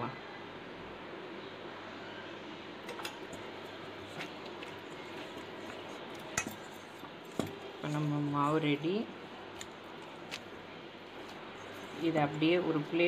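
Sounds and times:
metal spoon clinking on steel bowl: 4.1 - 9.0, 11.2 - 12.6.

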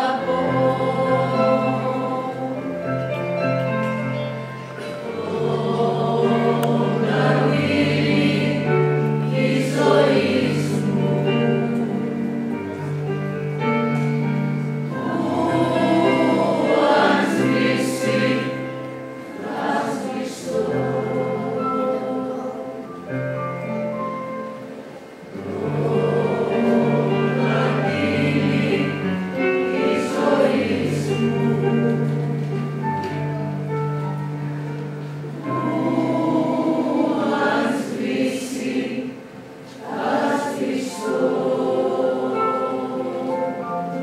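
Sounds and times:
choir singing sustained notes: 0.0 - 3.6, 4.2 - 13.2, 14.2 - 44.0
piano accompaniment: 0.0 - 44.0.

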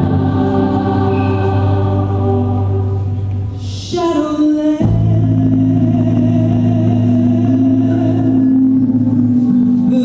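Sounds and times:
choir holding a chord: 0.0 - 3.4.

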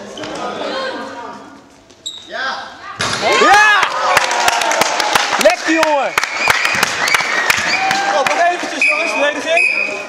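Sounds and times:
people shouting in a hall: 3.2 - 5.2, 6.7 - 8.8.

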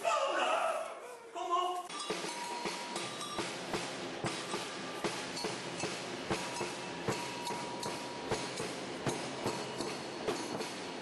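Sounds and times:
noisy hiss: 0.0 - 11.0
drums beaten in a steady beat: 1.9 - 11.0.

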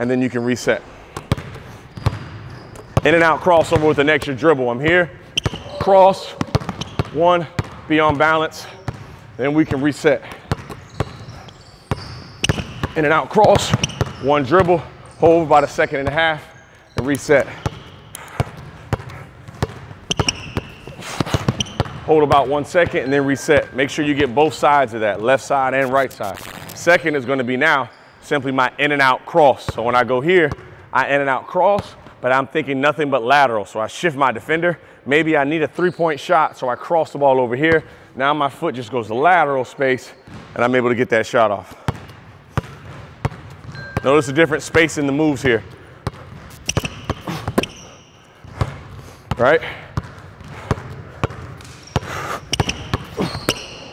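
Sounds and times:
basketball bouncing on wooden floor: 1.1 - 4.0, 5.4 - 8.2, 10.2 - 14.8, 17.0 - 23.0, 41.9 - 44.1, 46.0 - 53.8.

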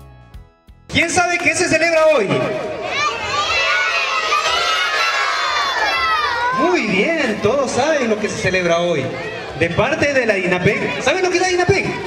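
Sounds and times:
children shouting together: 2.6 - 6.9.

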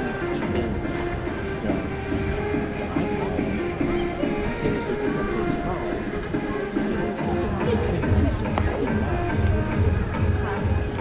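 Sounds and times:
music over loudspeakers: 0.0 - 11.0.

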